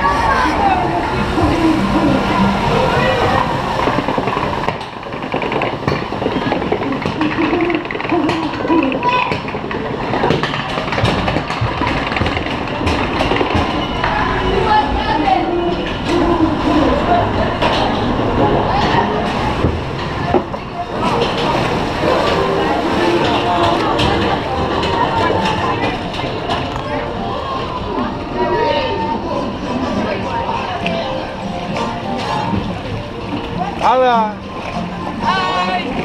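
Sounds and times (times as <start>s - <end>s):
voices: 0.0s - 5.1s, 5.8s - 36.0s
water rushing: 0.0s - 10.2s, 11.7s - 36.0s
chain conveyor rumble and clatter: 0.8s - 15.1s.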